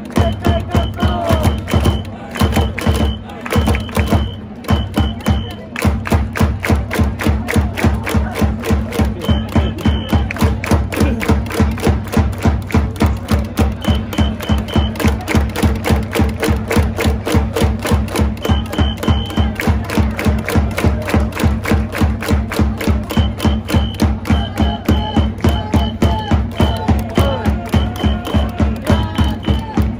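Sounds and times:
crowd chanting: 0.0 - 4.4, 22.8 - 29.9
fast drum beat: 0.0 - 29.9.

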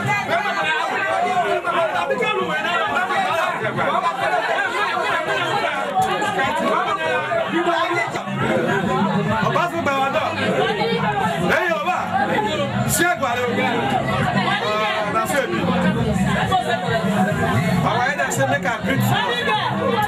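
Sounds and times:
men talking at once: 0.0 - 20.0.

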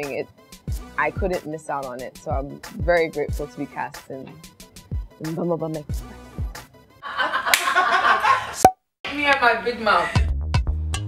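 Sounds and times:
people talking: 0.0 - 0.2, 1.0 - 4.3, 5.2 - 5.8, 9.1 - 10.3.

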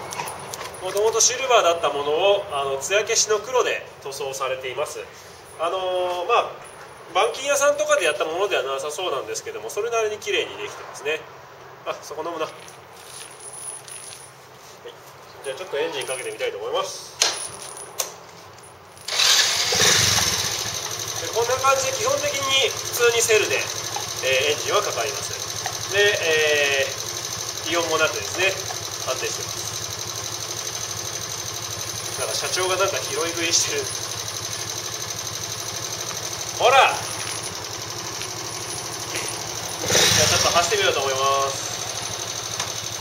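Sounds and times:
motorcycle engine starting and running: 19.1 - 43.0
starter clicks: 33.9 - 40.1.

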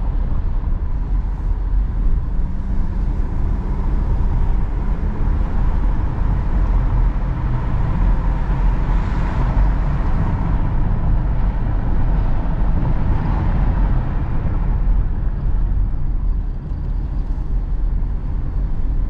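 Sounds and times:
road and tyre noise: 0.0 - 19.0.

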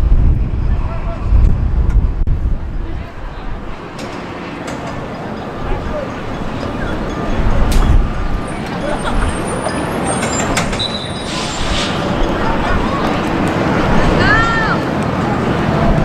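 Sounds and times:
distant voices calling out: 2.7 - 16.0.

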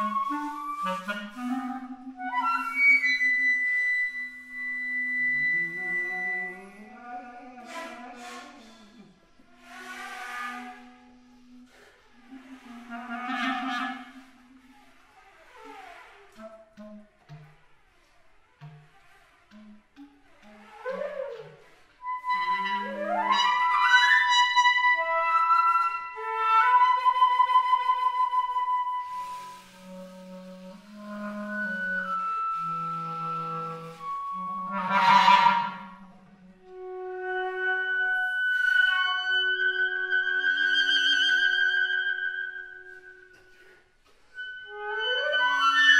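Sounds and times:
flute and clarinet low note: 0.0 - 17.6, 18.6 - 45.9
breathy hiss of blown air: 29.1 - 31.0.

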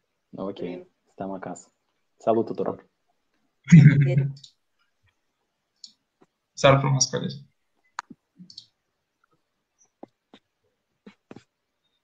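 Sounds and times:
person speaking: 3.7 - 4.5, 6.6 - 7.4.

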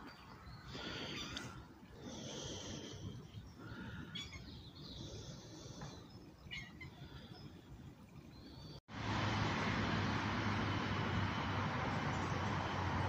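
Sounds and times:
faint high animal calls: 4.1 - 4.6, 6.5 - 7.3.

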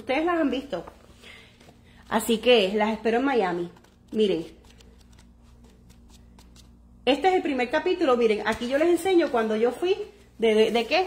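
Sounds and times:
low steady hum: 0.0 - 11.0
paper pages rustling: 0.7 - 6.8, 8.5 - 9.7.

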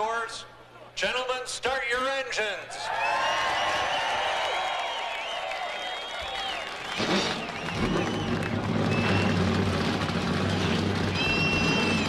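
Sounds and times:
crowd whistling and cheering: 2.8 - 12.0
race car engines idling: 6.9 - 12.0.

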